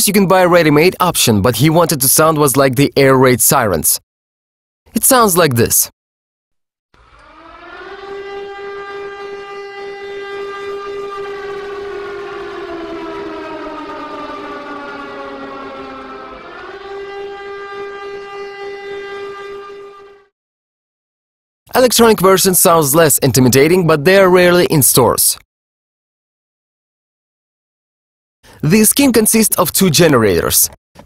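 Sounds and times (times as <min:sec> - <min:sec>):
air-raid siren wailing: 0:07.0 - 0:20.3.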